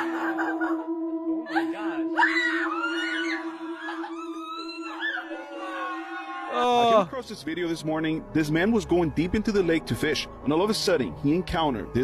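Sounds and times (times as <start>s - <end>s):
woman squealing and whimpering: 1.5s - 5.4s.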